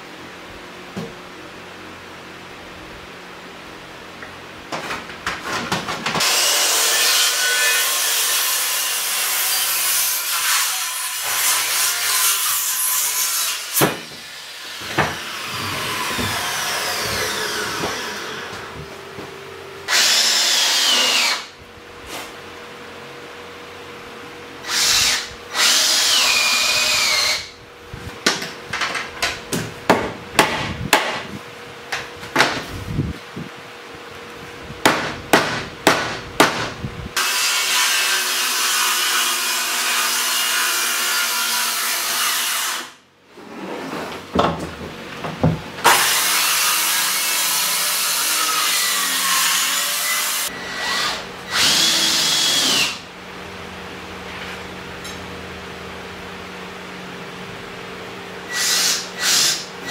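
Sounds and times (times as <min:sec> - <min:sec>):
circular saw cutting board: 0:06.2 - 0:18.8
drill driving screws: 0:19.9 - 0:21.5, 0:24.7 - 0:27.5, 0:50.7 - 0:53.0
sharp knocks: 0:29.5 - 0:31.3, 0:34.8 - 0:36.8.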